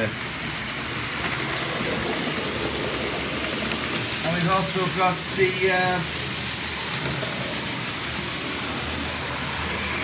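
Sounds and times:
model train running on track: 0.0s - 10.0s.

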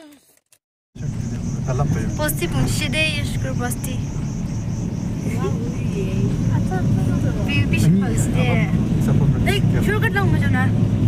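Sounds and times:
car engine and tyres rumbling: 1.0s - 11.0s
people talking: 1.2s - 4.1s, 5.2s - 10.7s.

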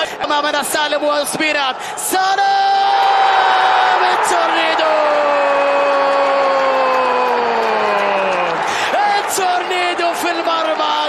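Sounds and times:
stadium crowd noise: 0.0s - 11.0s
commentator's long goal shout: 1.2s - 11.0s.

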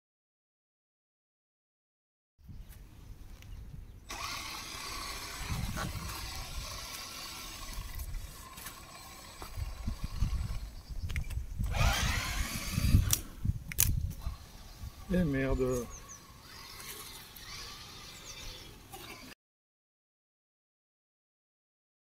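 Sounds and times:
rc car motor whining: 4.1s - 13.3s, 14.2s - 19.4s.

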